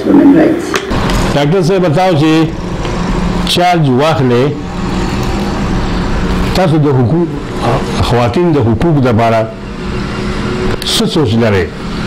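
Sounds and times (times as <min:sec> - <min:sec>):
steady low hum: 0:00.0 - 0:12.0
man's voice: 0:01.3 - 0:02.6, 0:03.5 - 0:04.6.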